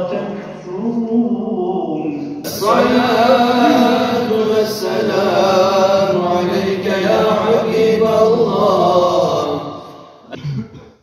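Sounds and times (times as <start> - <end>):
man chanting religious recitation: 0.0 - 10.2.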